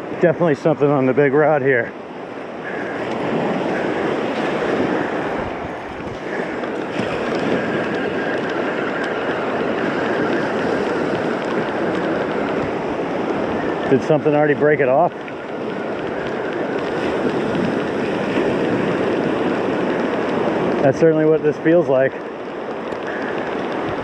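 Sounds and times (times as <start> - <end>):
surf waves breaking on sand: 0.0 - 24.0.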